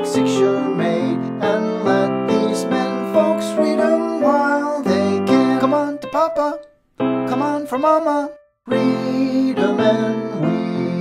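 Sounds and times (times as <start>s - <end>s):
piano accompaniment: 0.0s - 11.0s.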